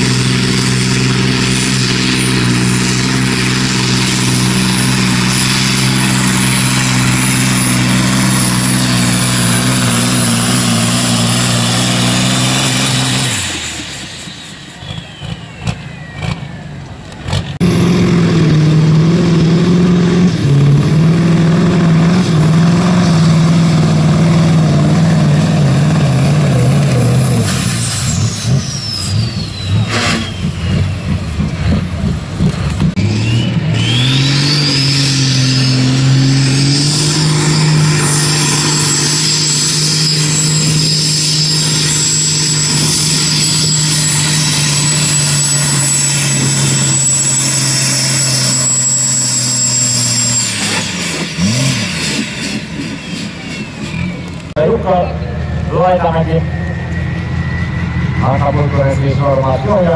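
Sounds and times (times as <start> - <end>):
diesel truck engine revving: 0.0 - 59.9
high whistle: 12.8 - 16.7, 27.8 - 31.1, 33.2 - 51.2, 56.4 - 58.8.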